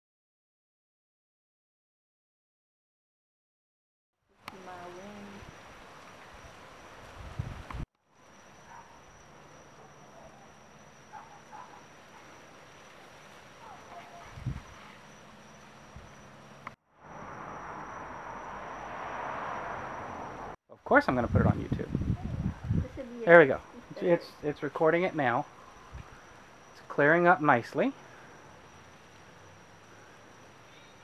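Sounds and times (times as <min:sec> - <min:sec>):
short insect chirps: 0:08.1 - 0:20.6, 0:23.2 - 0:31.0
insects high thin tone: 0:08.1 - 0:21.4, 0:22.0 - 0:31.0.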